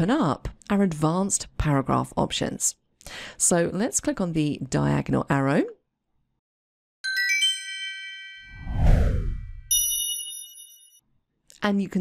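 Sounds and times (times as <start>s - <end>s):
downward whoosh with low rumble: 8.6s - 9.7s
bright bell-like ding: 9.7s - 11.0s.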